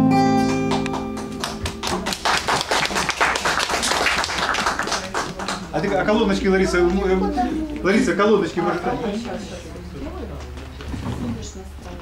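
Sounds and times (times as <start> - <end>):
small group applauding: 0.4 - 7.0.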